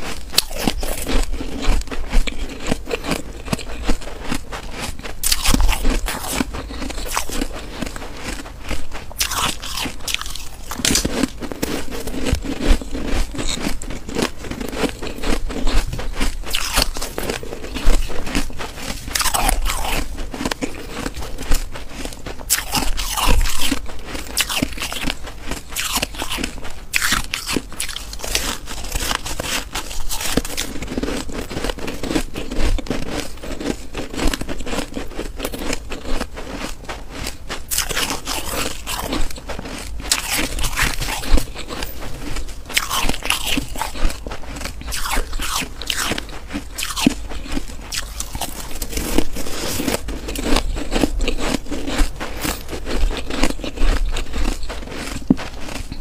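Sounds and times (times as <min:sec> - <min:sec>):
crunching of frost ice being chewed: 0:00.0 - 0:56.0.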